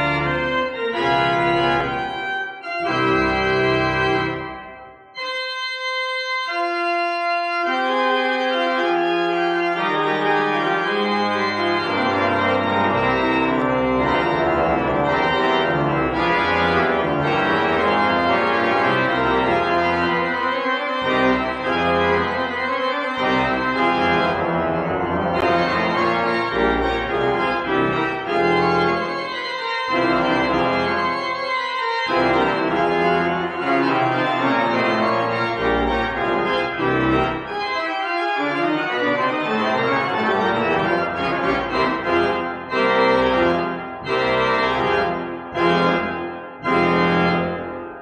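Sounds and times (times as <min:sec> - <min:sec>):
pipe organ chords: 0:00.0 - 0:48.0.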